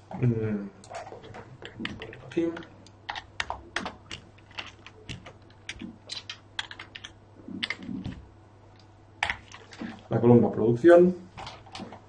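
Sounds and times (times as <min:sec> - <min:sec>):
keyboard keys clicking: 0:00.9 - 0:08.2.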